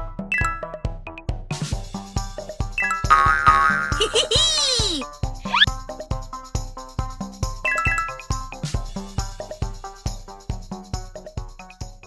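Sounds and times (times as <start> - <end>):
upbeat children's music: 0.0 - 12.0
cartoon boing swoop: 5.4 - 5.7.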